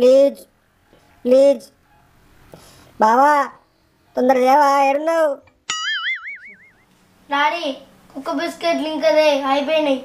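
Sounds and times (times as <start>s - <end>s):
cartoon boing sound effect: 5.7s - 6.9s.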